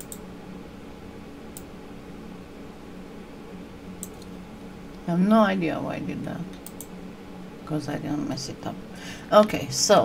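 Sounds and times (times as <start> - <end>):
steady low hum: 0.0 - 10.0
faint clicks: 4.0 - 4.3, 6.5 - 6.9.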